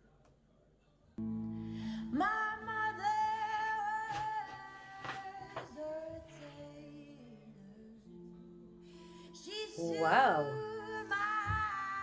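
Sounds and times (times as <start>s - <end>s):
guitar chord: 1.2s - 3.8s
young woman singing: 1.9s - 8.3s, 9.2s - 12.0s.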